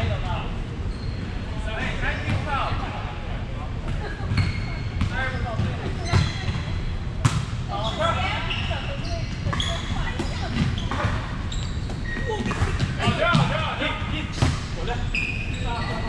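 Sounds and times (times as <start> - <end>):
sneakers squeaking on floor: 0.8 - 2.8, 3.9 - 16.0.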